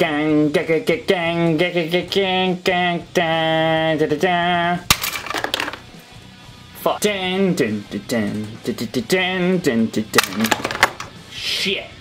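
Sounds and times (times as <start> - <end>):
man singing wordless tune: 0.0 - 4.9, 6.8 - 10.2
plastic toys clattering over: 4.9 - 5.9, 10.2 - 11.2.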